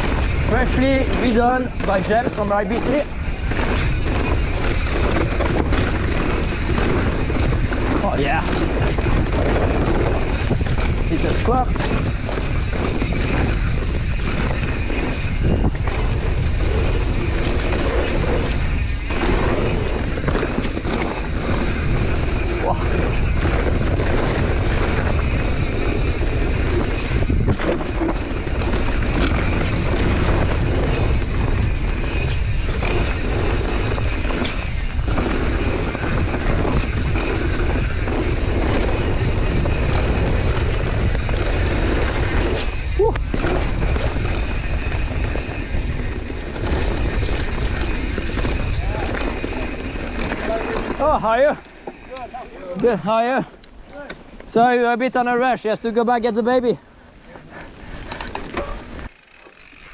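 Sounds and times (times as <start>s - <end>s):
wind rumble on microphone: 0.0s - 52.4s
bike tyres on gravel: 0.0s - 59.9s.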